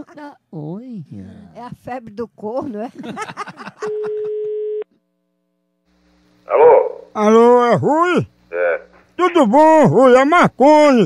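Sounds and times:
telephone ringback beep: 3.9s - 4.8s.

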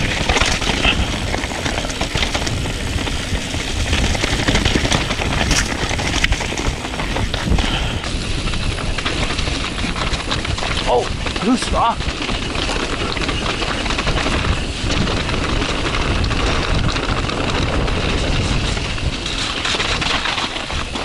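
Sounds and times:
mountain bike on rocky trail: 0.0s - 21.0s
wind on microphone: 0.0s - 21.0s.

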